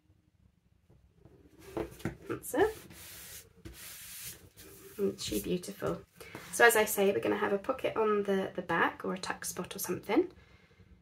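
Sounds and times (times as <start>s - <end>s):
hand rubbing across paper: 1.6s - 5.7s.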